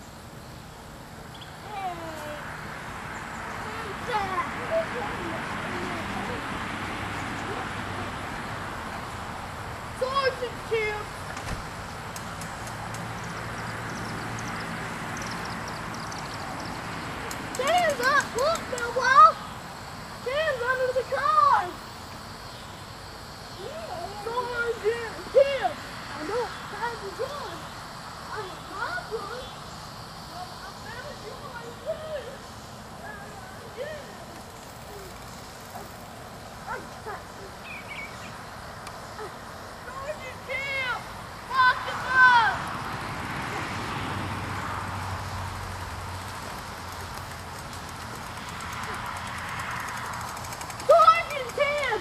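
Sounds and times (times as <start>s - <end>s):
distant voices calling out: 0.0s - 52.0s
even hiss: 0.0s - 52.0s.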